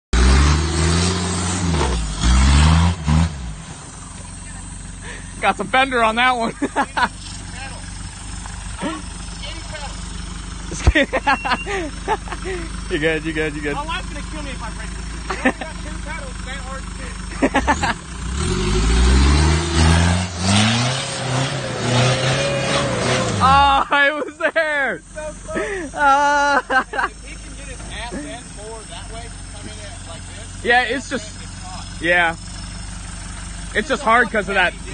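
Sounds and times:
van engine revving hard: 0:00.1 - 0:04.0, 0:04.8 - 0:34.9.

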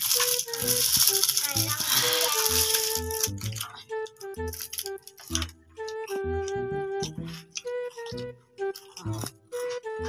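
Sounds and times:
background music: 0:00.0 - 0:10.0
plastic candy wrapper crinkling: 0:00.0 - 0:10.0.

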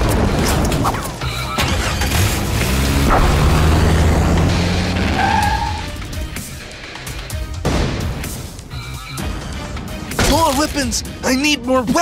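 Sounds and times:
background music: 0:00.0 - 0:12.0
tyre screech: 0:04.9 - 0:06.0.

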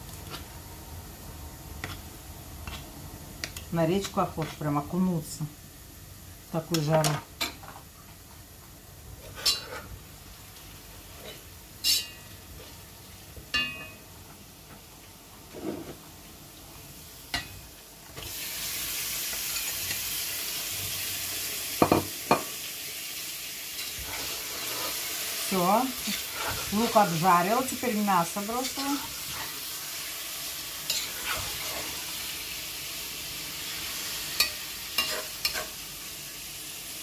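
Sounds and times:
utensil clinking on cookware: 0:11.8 - 0:12.3, 0:13.5 - 0:14.0, 0:34.4 - 0:35.7
meat sizzling in a pan: 0:16.6 - 0:37.0.

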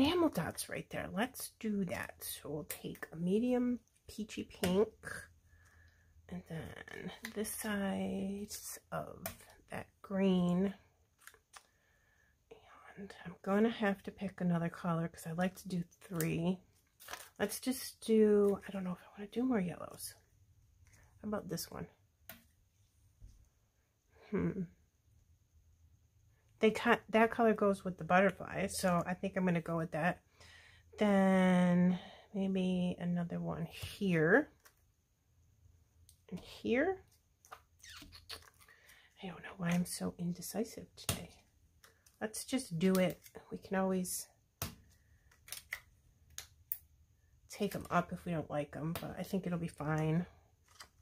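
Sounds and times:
low steady hum: 0:00.0 - 0:37.5
clicks and rustles of peeling stickers: 0:50.6 - 0:51.0.

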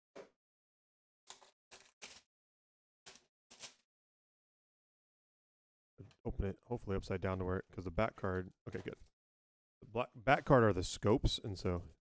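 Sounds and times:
plastic shrink-wrap crinkling: 0:01.3 - 0:02.3.

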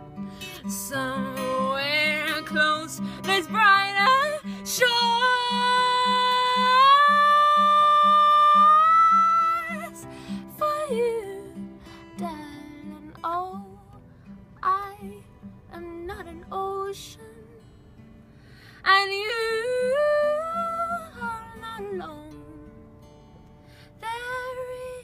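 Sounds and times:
woman singing: 0:00.0 - 0:14.0, 0:14.6 - 0:17.7, 0:18.8 - 0:22.8, 0:23.9 - 0:25.0
fingerpicked acoustic guitar: 0:00.0 - 0:25.0.

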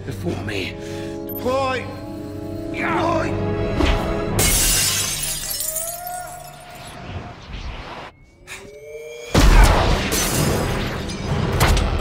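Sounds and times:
orchestral film score: 0:00.0 - 0:04.4
glass window shattering: 0:04.4 - 0:06.9, 0:09.8 - 0:11.6.

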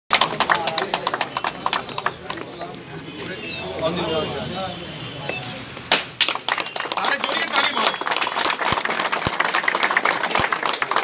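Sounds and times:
people clapping: 0:00.1 - 0:03.0, 0:05.9 - 0:11.0
voices: 0:00.2 - 0:05.8, 0:06.5 - 0:08.3.

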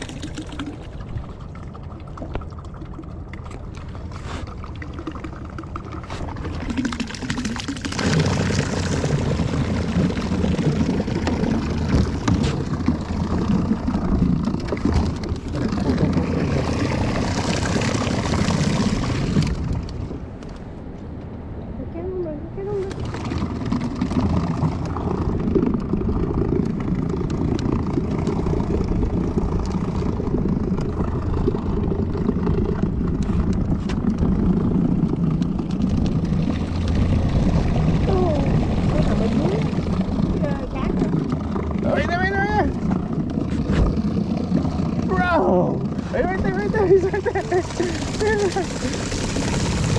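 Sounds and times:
small boat motor running: 0:00.0 - 0:20.4, 0:22.6 - 0:49.9.

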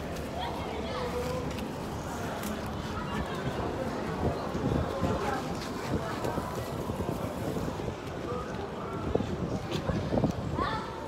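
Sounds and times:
faint voices: 0:00.0 - 0:11.0
wind noise on microphone: 0:01.8 - 0:11.0.

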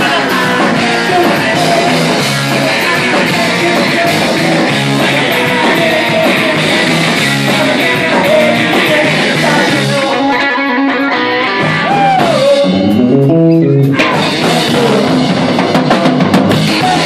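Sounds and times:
person singing: 0:00.0 - 0:15.5, 0:16.5 - 0:17.0
drum kit: 0:00.0 - 0:17.0
electric guitar: 0:00.0 - 0:17.0
live rock band playing: 0:00.0 - 0:17.0.

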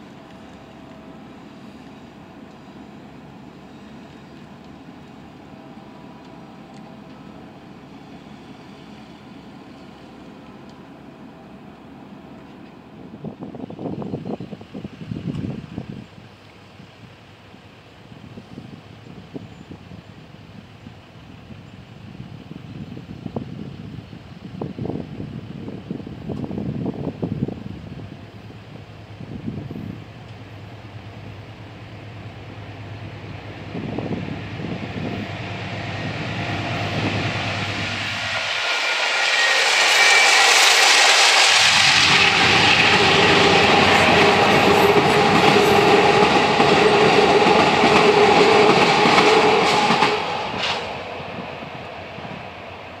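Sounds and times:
passenger train rumbling past: 0:00.0 - 0:53.0
clatter of train cars: 0:11.8 - 0:53.0.

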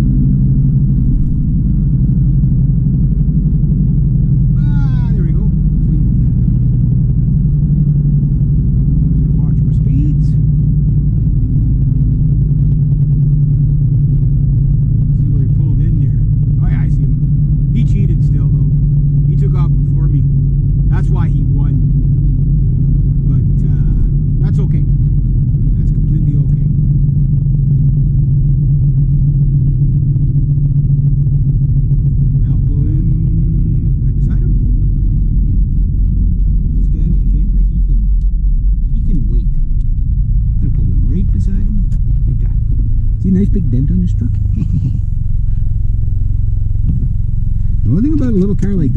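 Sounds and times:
car engine drone: 0:00.0 - 0:48.9.

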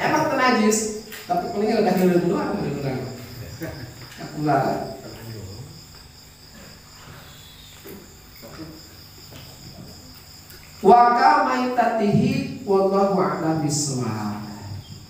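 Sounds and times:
crickets chirping: 0:00.0 - 0:15.0
man speaking: 0:04.9 - 0:05.7.

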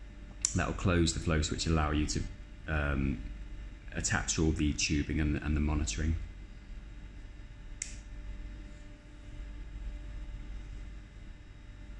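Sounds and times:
faint low room hum: 0:00.0 - 0:11.9.

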